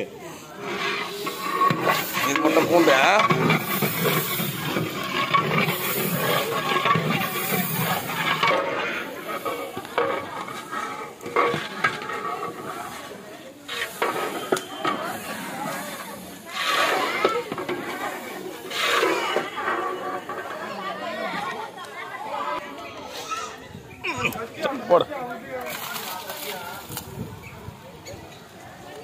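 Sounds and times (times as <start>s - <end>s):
people talking: 0.0s - 29.0s
metal ladle scraping pot: 0.4s - 21.6s
onions sizzling in a pot: 0.5s - 21.0s.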